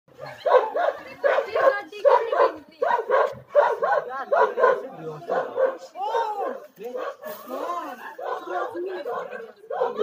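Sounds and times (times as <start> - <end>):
dogs barking: 0.1 - 7.4, 8.1 - 10.0.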